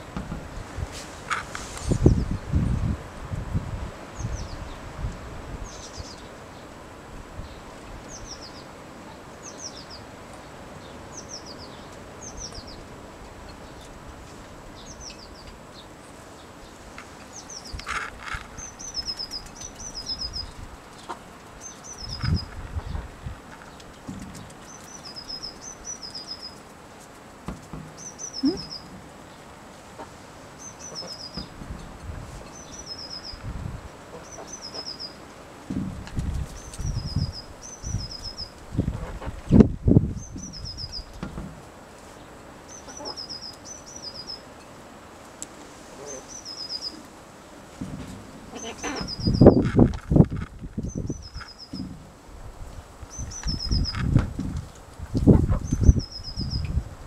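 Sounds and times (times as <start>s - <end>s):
small bird singing: 4.2s - 4.8s, 5.6s - 6.7s, 7.4s - 10.1s, 10.8s - 12.9s, 14.8s - 26.6s, 28.0s - 29.4s, 30.6s - 31.6s, 32.4s - 33.5s, 34.2s - 35.2s, 36.4s - 41.3s, 42.7s - 44.5s, 46.0s - 47.1s, 48.5s - 52.0s, 53.1s - 54.2s, 55.5s - 56.8s
dull thumps: 35.7s - 36.4s, 47.8s - 50.4s, 51.7s - 52.1s.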